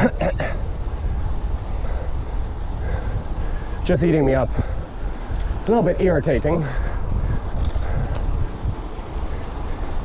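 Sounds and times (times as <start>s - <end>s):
bicycle road rumble: 0.0s - 10.0s
wind buffeting microphone: 0.0s - 10.0s
wind rushing: 0.0s - 10.0s.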